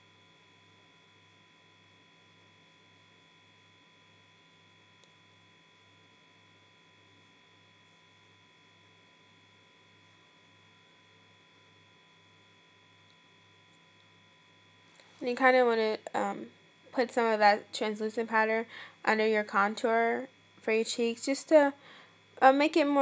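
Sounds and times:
faint electrical hum: 0.0s - 23.0s.

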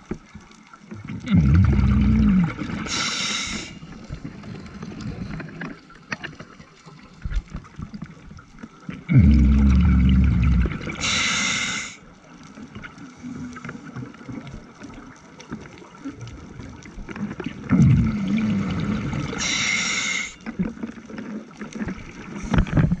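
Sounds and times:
exhaled bubbles gurgling: 0.8s - 23.0s
hissing regulator inhalation: 1.4s - 3.9s, 9.1s - 12.0s, 17.9s - 20.5s.

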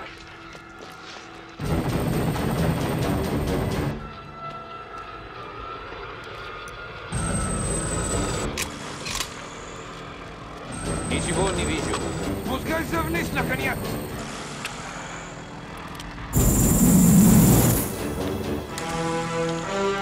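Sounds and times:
dramatic music score: 0.0s - 20.0s
helicopter: 1.6s - 20.0s
high whine: 7.1s - 18.9s.

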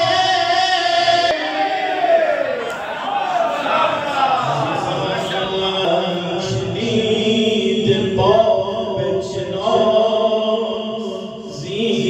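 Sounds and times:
man chanting into a microphone: 0.0s - 1.6s, 4.4s - 12.0s.

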